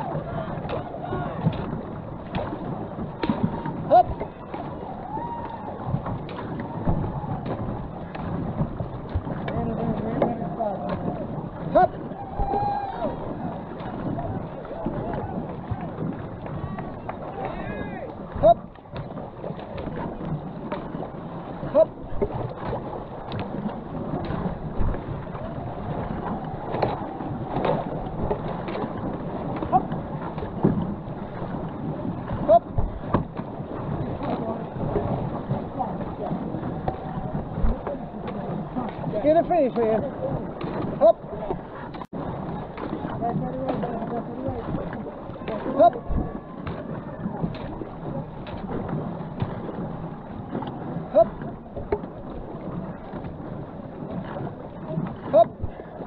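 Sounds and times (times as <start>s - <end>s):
paddle strokes: 0.0s - 56.0s
water rushing and splashing: 0.0s - 56.0s.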